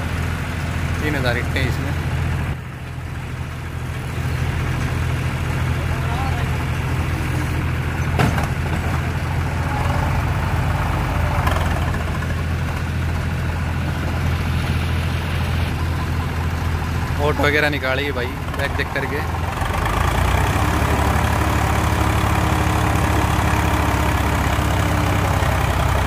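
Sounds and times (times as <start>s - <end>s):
tractor diesel engine running: 0.0s - 26.0s.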